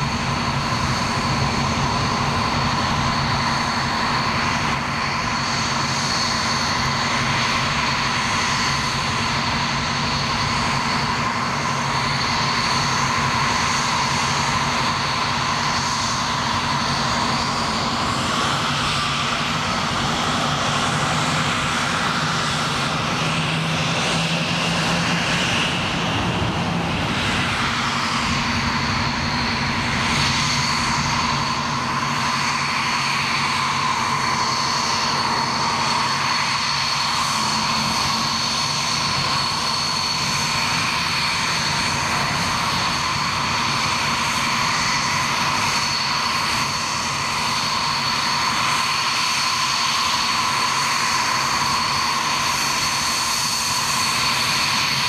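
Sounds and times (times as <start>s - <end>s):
jet engine roar with whine: 0.0s - 55.0s.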